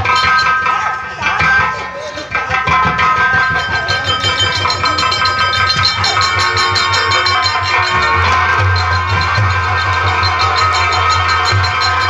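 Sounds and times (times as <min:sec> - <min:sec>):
kettle drum and hand drum beating: 0:00.0 - 0:12.0
sustained melodic tones: 0:00.0 - 0:12.0.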